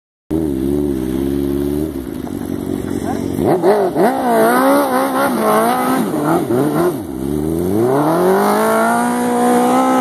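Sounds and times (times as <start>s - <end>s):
engine idling: 0.5s - 4.2s.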